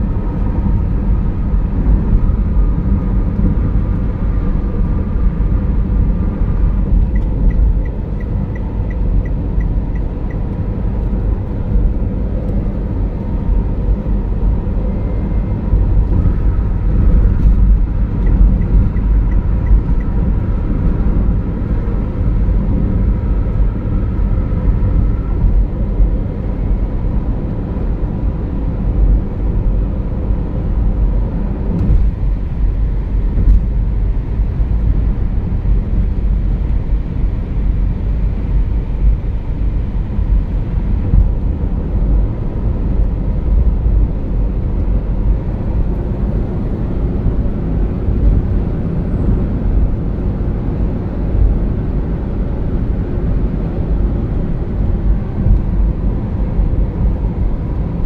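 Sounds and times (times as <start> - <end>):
car engine and road rumble: 0.0 - 58.0.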